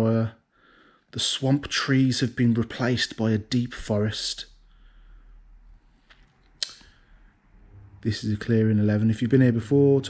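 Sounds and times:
short clicks: 0:06.1 - 0:07.0.

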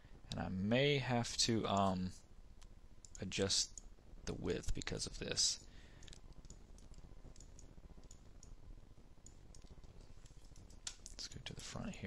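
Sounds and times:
low background hum: 0:00.0 - 0:12.0
computer mouse clicks: 0:06.0 - 0:08.6, 0:09.2 - 0:11.3.

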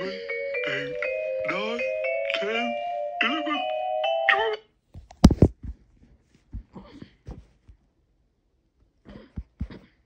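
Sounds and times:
chiming music: 0:00.0 - 0:04.6
person's voice: 0:00.0 - 0:04.7.

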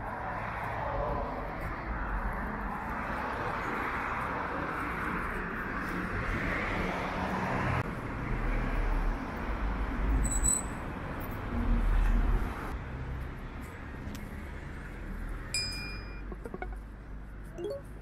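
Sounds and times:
cars passing: 0:00.0 - 0:18.0
electronic chime with clicks: 0:15.6 - 0:16.8, 0:17.6 - 0:17.9.

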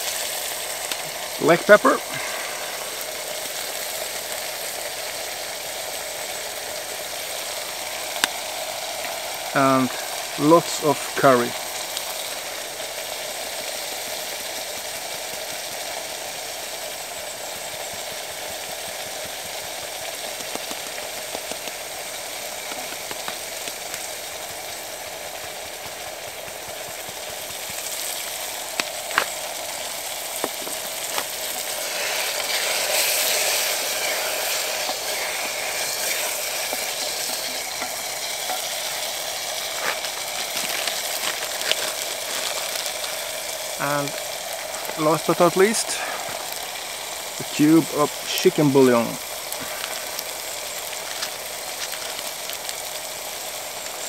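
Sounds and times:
vegetables sizzling in oil: 0:00.0 - 0:54.0.

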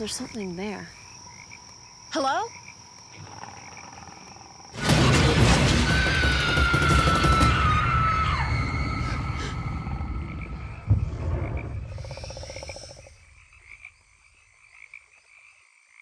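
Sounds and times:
frogs croaking: 0:00.0 - 0:04.8, 0:08.8 - 0:16.0
fast croaking rattle: 0:02.6 - 0:07.7, 0:09.4 - 0:14.0
low boom: 0:09.1 - 0:12.1.

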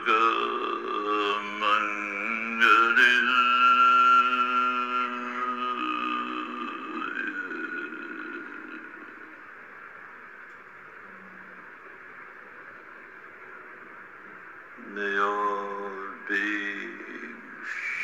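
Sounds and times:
man chanting long note: 0:00.0 - 0:09.3, 0:14.8 - 0:18.0
faint steady hiss: 0:00.0 - 0:18.0.

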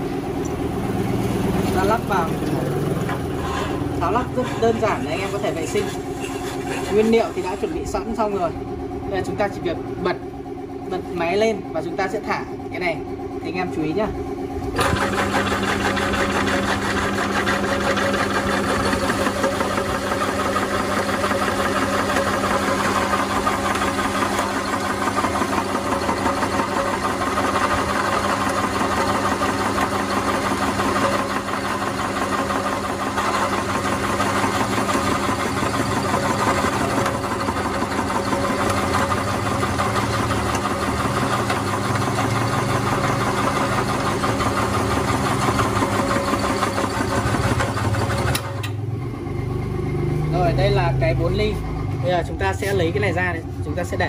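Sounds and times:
electric meat grinder motor humming: 0:00.0 - 0:07.9, 0:14.6 - 0:50.9.

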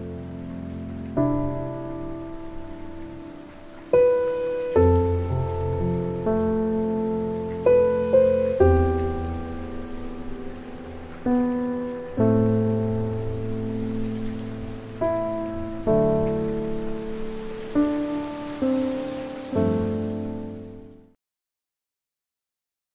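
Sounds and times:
faint rain-like hiss: 0:00.0 - 0:21.2
soft piano chords: 0:00.0 - 0:21.2.

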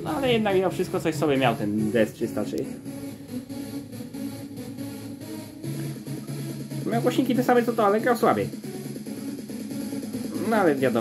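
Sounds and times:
music with bass line and beat: 0:00.0 - 0:11.0.

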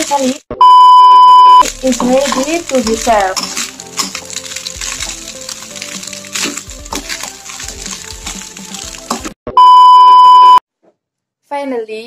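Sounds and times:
high steady beep: 0:00.6 - 0:01.6, 0:09.5 - 0:10.6
background music: 0:01.7 - 0:09.4
metal spatula scraping a wok: 0:01.8 - 0:09.3.

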